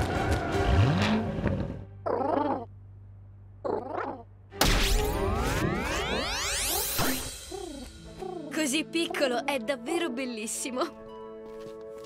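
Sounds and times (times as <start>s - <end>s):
cartoon pigeon cooing: 2.0s - 2.7s, 3.6s - 4.3s, 7.4s - 8.5s
cartoon sound effects: 3.6s - 8.0s
busy music: 7.0s - 12.0s.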